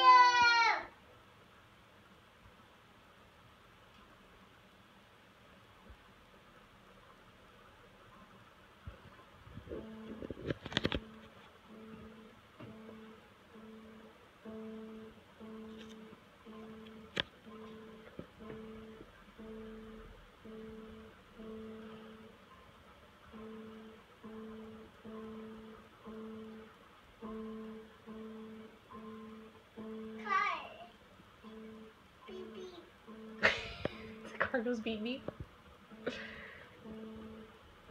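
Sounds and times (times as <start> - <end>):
electronic keyboard notes: 8.9 - 37.9.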